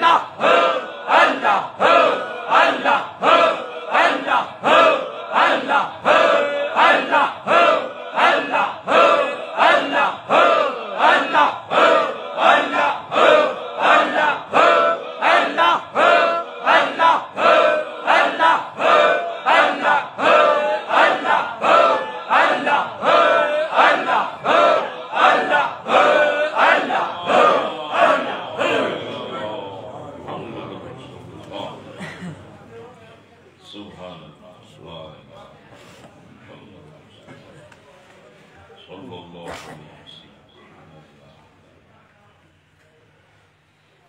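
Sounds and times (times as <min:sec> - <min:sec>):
voices chanting in unison: 0:00.0 - 0:30.5.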